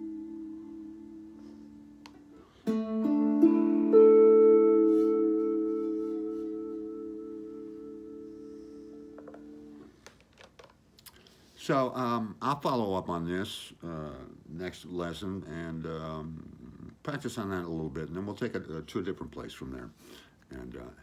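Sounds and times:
slide guitar notes ringing: 0.0s - 9.9s.

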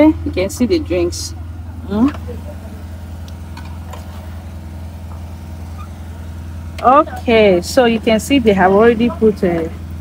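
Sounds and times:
power generator running: 0.0s - 10.0s.

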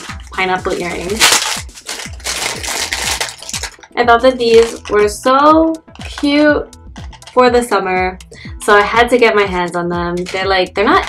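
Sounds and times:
plastic bag crinkling: 0.0s - 5.0s
background music with steady beat: 0.0s - 11.0s.

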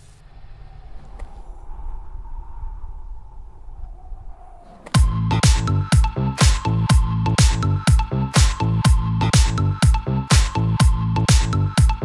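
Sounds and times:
rising whoosh: 0.0s - 7.6s
electronic dance kick drum: 5.0s - 12.0s.

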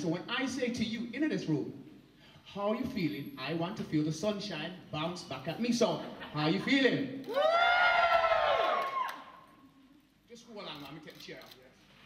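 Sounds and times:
audience whooping: 7.2s - 9.5s.

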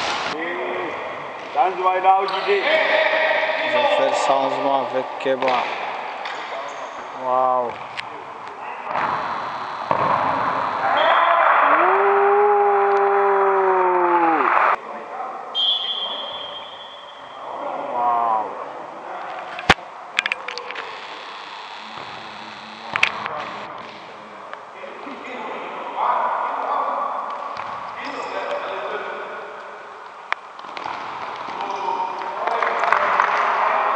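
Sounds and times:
burst of noise: 8.9s - 14.8s
voices shouting: 10.7s - 14.8s
long drawn-out shout: 10.8s - 14.8s.

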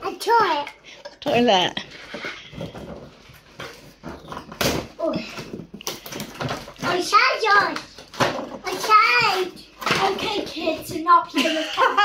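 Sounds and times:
packaging rustles and knocks: 2.5s - 11.1s.

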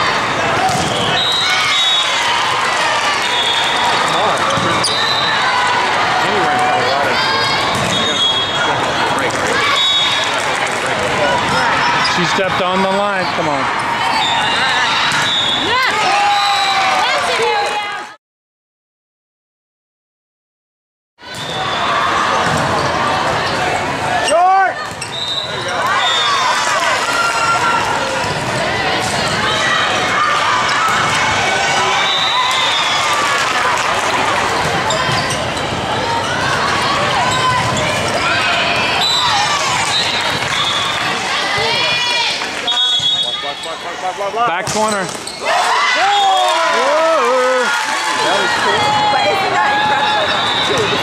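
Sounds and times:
voices and shouts echoing: 0.0s - 18.2s, 21.4s - 51.0s
sneakers squeaking on court: 24.8s - 25.8s, 34.6s - 36.6s, 44.6s - 45.5s.

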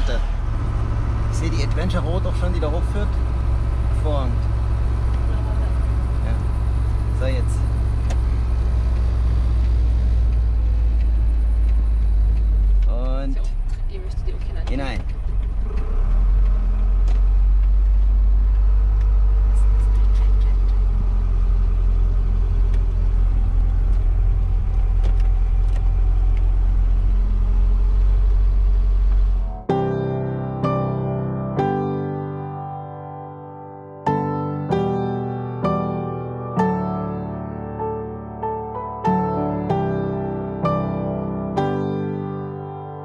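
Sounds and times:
diesel engine droning: 0.0s - 29.9s
soft piano music: 29.4s - 43.0s.

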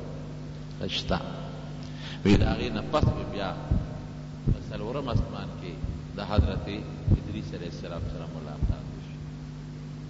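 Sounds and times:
steady electrical hum: 0.0s - 10.0s
man preaching: 2.2s - 9.2s
low thumps: 2.3s - 9.4s.

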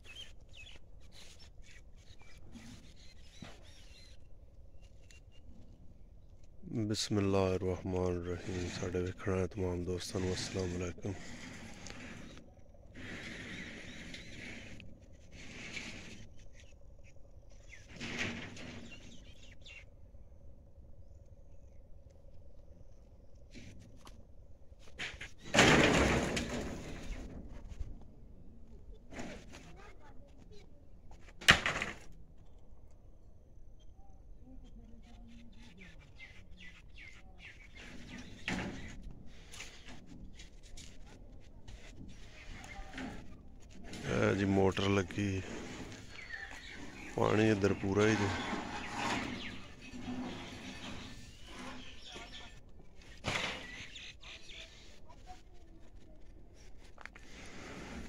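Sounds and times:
faint bird chirps: 0.0s - 6.5s, 18.7s - 20.4s, 32.4s - 40.0s, 41.8s - 43.4s, 44.0s - 56.7s.

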